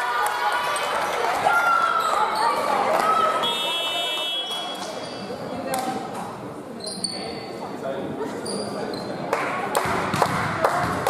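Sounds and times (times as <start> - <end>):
girls shouting and cheering: 0.0 - 4.2.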